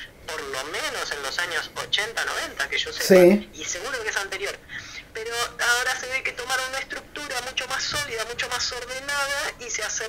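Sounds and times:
woman talking: 0:00.3 - 0:10.0.

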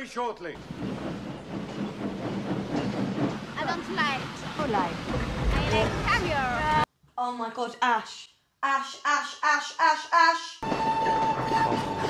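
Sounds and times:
train rumbling along rails: 0:00.6 - 0:06.9, 0:10.6 - 0:12.0.

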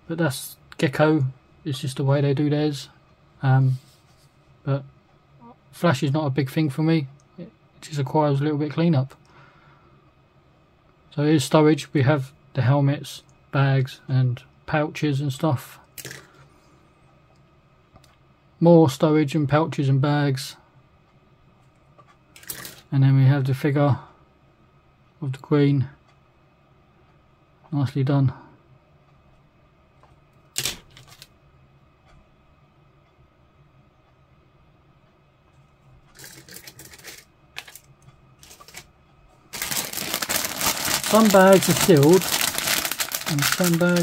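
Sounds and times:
plastic parts clicking and rattling: 0:30.6 - 0:31.3, 0:36.1 - 0:38.9, 0:39.5 - 0:44.0
plastic bag crinkling: 0:38.4 - 0:38.9, 0:39.5 - 0:44.0.

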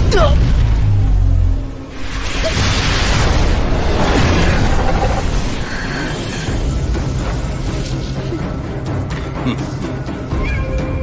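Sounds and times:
energy blast explosion: 0:00.0 - 0:06.0.

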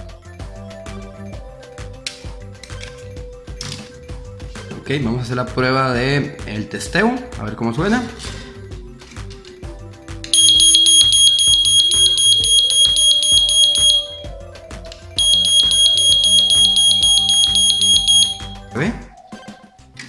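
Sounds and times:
smoke alarm siren blasts: 0:10.4 - 0:14.4, 0:15.2 - 0:18.7.

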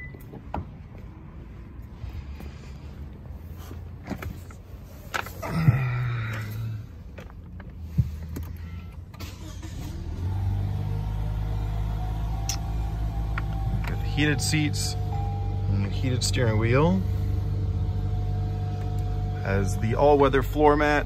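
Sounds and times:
car engine starting and idling: 0:00.0 - 0:21.0.

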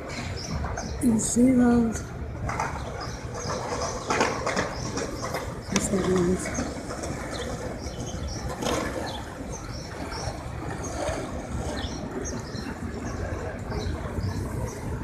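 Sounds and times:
small birds chirping: 0:02.7 - 0:14.9.

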